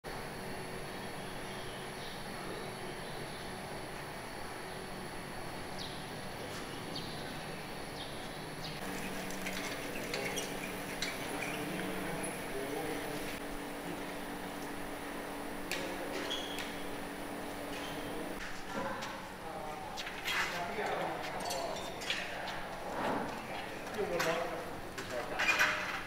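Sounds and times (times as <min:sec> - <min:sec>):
city background hum: 0:00.0 - 0:26.0.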